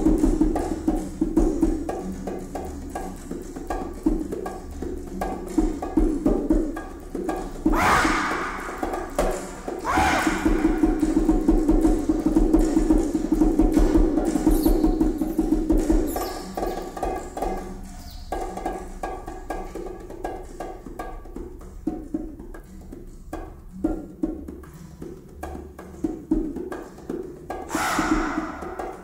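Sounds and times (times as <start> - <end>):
hand drum strikes: 0.0 - 29.0
wood block strikes: 3.7 - 21.4, 27.6 - 29.0
rising swooping calls: 7.7 - 11.0, 27.7 - 29.0.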